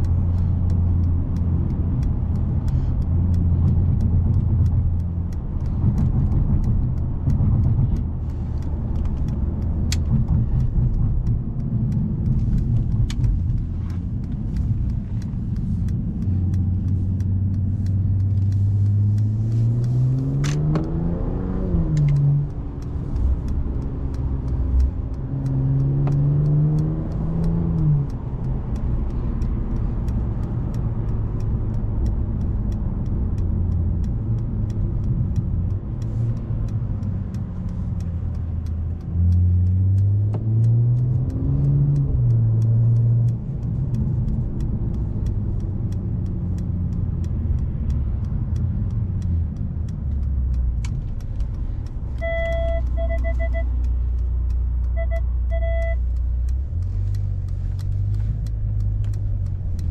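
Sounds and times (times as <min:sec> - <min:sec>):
car engine drone in cabin: 0:00.0 - 0:59.9
road noise: 0:00.0 - 0:59.9
electronic beeps: 0:52.2 - 0:53.7, 0:55.0 - 0:56.0.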